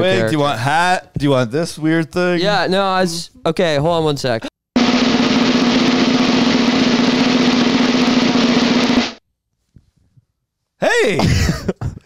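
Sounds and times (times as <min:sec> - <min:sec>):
snare drum roll: 0:04.8 - 0:09.2.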